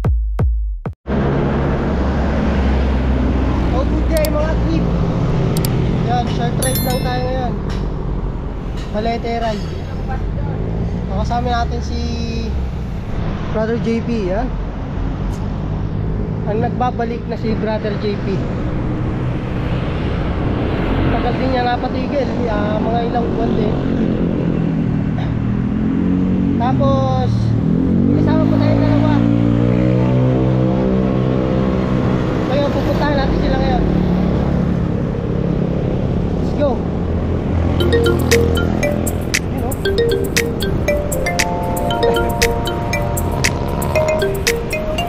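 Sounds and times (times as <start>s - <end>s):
person speaking: 6.6s - 7.6s, 37.8s - 45.0s.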